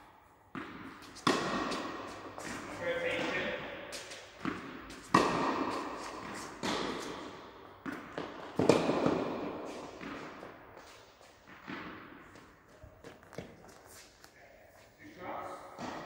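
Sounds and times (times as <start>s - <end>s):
tennis ball bouncing on court: 0.5s - 14.0s, 15.7s - 16.0s
racket striking tennis ball: 0.5s - 14.3s, 15.5s - 16.0s.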